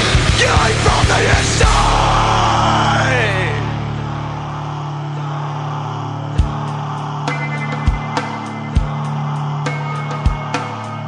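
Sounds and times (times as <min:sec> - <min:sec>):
bass guitar: 0:00.0 - 0:11.0.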